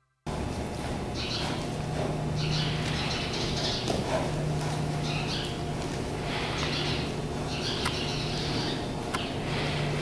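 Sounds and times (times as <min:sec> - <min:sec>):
steady low hum: 0:00.3 - 0:10.0
small birds chirping: 0:01.1 - 0:01.7, 0:02.3 - 0:04.1, 0:04.7 - 0:05.7, 0:06.3 - 0:09.5.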